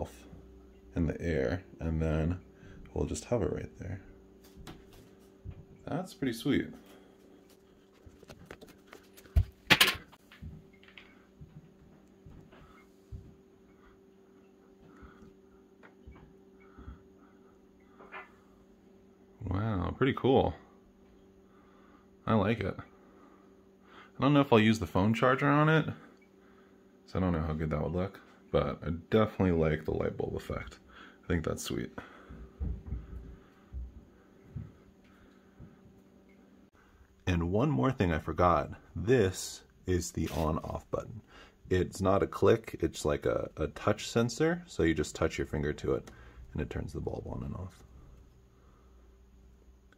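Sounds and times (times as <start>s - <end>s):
faint low hum: 0.0s - 49.9s
soft low thumps: 4.6s - 5.9s, 32.2s - 35.0s.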